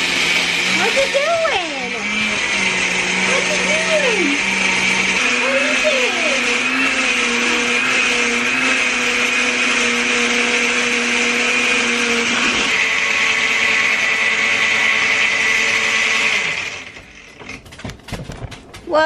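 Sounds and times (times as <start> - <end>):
blender running: 0.0 - 17.7.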